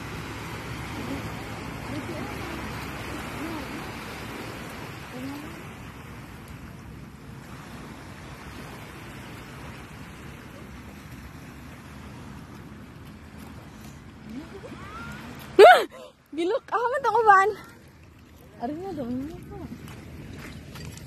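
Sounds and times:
rushing open air noise: 0:00.0 - 0:21.0.

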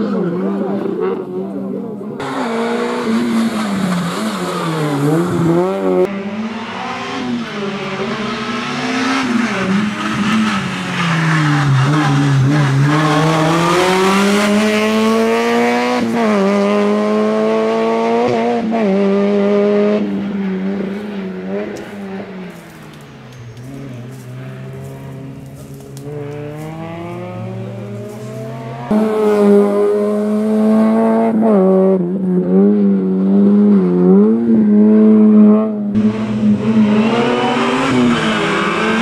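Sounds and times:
car engine revving: 0:00.0 - 0:39.0.

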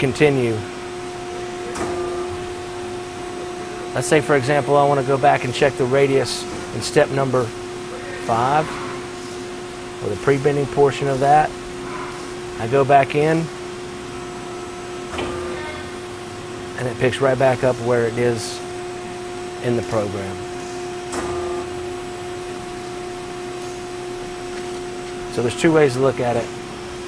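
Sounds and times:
machine hum with constant tone: 0:00.0 - 0:27.0.

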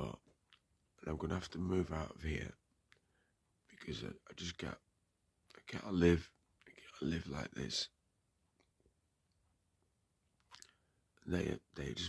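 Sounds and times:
faint mouth sound: 0:10.4 - 0:10.8.

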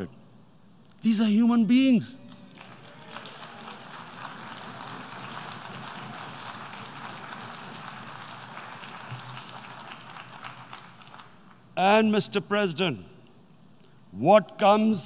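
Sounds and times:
audience applauding: 0:02.3 - 0:11.6.

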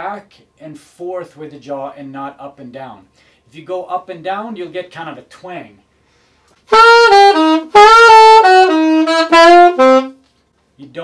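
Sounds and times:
alto saxophone jazz line: 0:06.6 - 0:10.3.

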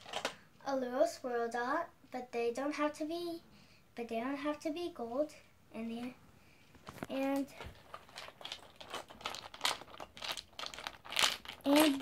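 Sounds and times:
plastic toy bricks rattling: 0:07.3 - 0:12.0.

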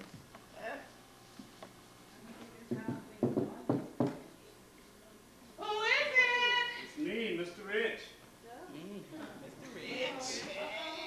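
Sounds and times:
knock: 0:02.7 - 0:04.2.

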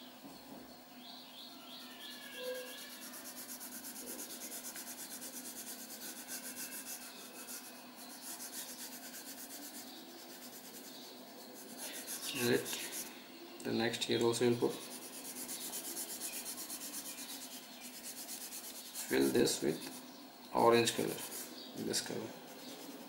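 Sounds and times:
pencil shading on paper: 0:02.0 - 0:13.1, 0:14.6 - 0:20.0, 0:20.8 - 0:21.7, 0:22.5 - 0:23.0.

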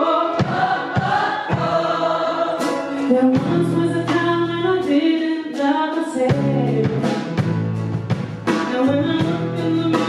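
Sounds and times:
choir singing held notes: 0:00.0 - 0:03.4.

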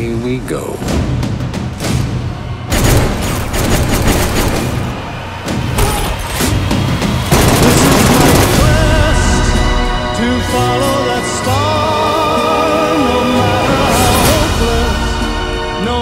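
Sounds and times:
action trailer music: 0:00.0 - 0:16.0
rapid gunfire: 0:02.7 - 0:05.4, 0:07.0 - 0:09.3.

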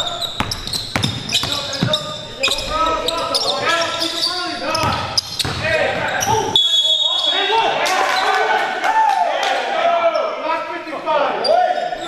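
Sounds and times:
echoing indistinct voices: 0:00.0 - 0:12.0
basketball bouncing on wooden floor: 0:00.3 - 0:02.9, 0:04.7 - 0:05.6.

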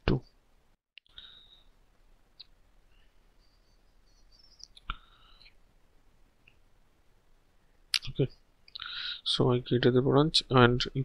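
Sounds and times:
faint high chirps: 0:02.4 - 0:05.6.

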